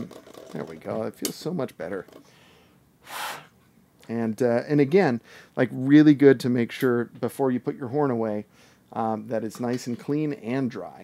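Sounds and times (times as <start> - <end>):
short breath exhale or sniff: 2.3 - 3.5.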